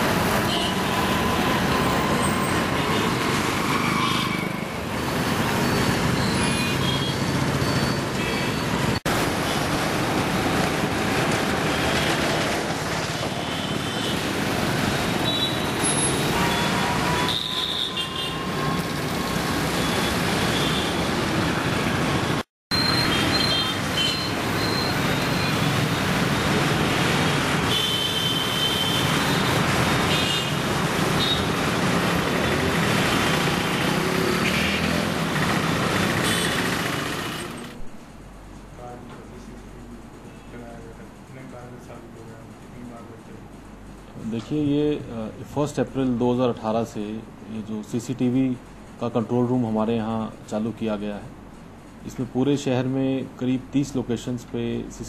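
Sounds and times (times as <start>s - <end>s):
road traffic noise: 0.0s - 55.0s.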